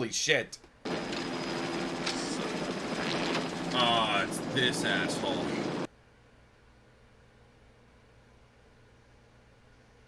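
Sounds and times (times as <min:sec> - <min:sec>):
helicopter engine and rotor: 0:00.8 - 0:05.9.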